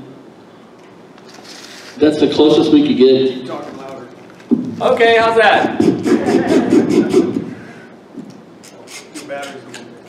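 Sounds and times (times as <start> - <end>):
murmured voice: 5.7 - 7.7
man laughing: 6.0 - 7.5.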